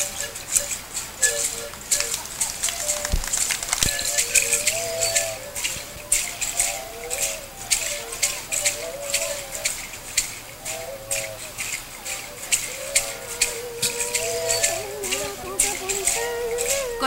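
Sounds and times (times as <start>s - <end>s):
hand rattles shaken: 0.0s - 17.0s
high wavering melody: 0.0s - 17.0s.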